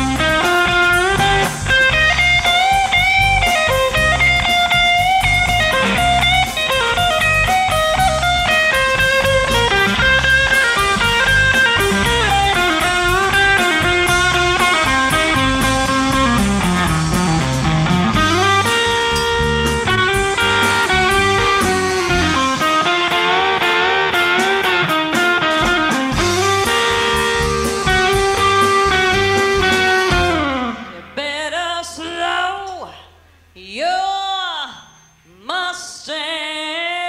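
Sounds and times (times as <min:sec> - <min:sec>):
drum beat with cymbal ticks: 0:00.0 - 0:30.8
electric guitar lead: 0:00.0 - 0:31.4
bass: 0:00.0 - 0:36.0.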